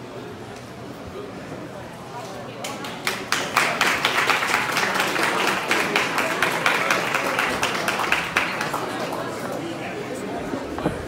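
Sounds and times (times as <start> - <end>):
audience applauding: 2.8 - 9.9.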